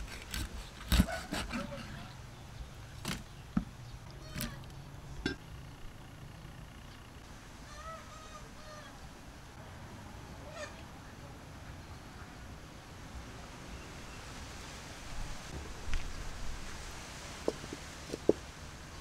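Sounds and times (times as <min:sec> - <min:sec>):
fowl call: 0:07.6 - 0:09.0.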